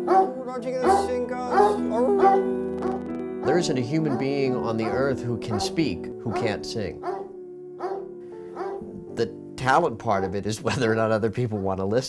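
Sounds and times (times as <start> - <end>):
background music: 0.0 - 12.0
dog barking: 0.1 - 0.4, 1.5 - 3.1, 4.1 - 8.8.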